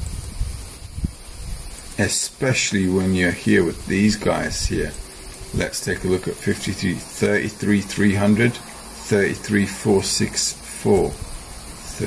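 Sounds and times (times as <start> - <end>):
faint hiss: 0.0 - 12.0
low uneven rumble: 1.0 - 12.0.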